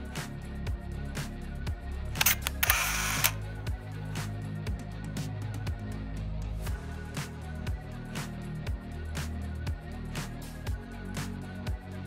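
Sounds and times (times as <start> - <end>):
background music with beat: 0.0 - 12.0
camera shutter clicks: 2.2 - 3.4.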